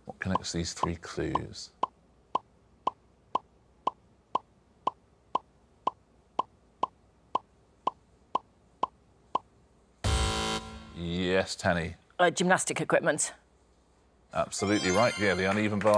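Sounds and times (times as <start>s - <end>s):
electronic blips: 10.0s - 11.0s.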